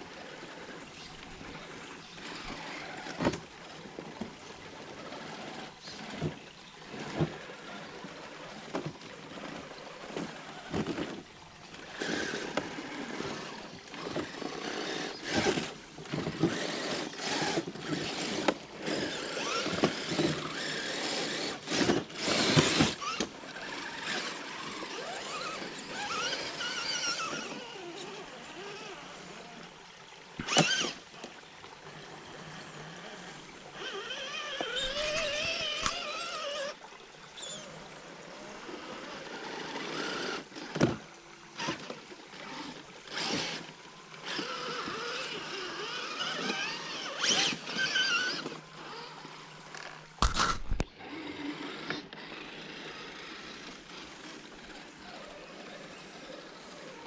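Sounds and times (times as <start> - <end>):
electric motors whining: 0.0 - 57.0.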